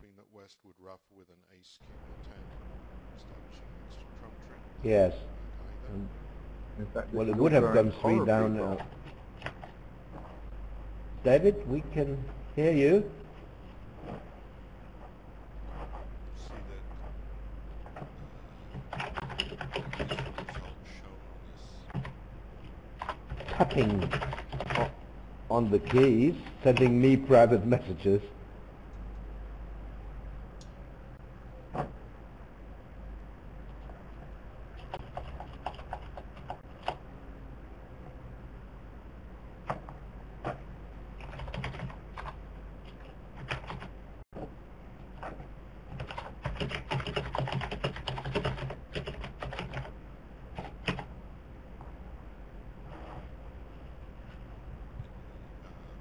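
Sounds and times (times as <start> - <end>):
low steady hum: 0.0 - 56.0
typing on computer keyboard: 18.7 - 20.7, 23.0 - 25.0, 34.8 - 37.0, 41.2 - 43.9, 45.9 - 49.9, 50.6 - 51.1.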